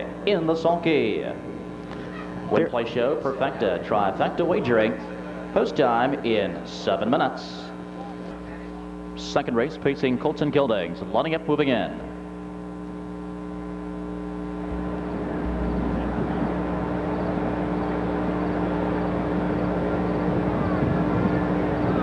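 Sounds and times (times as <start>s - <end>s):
steady electrical hum: 0.0s - 22.0s
car engine approaching: 14.4s - 22.0s.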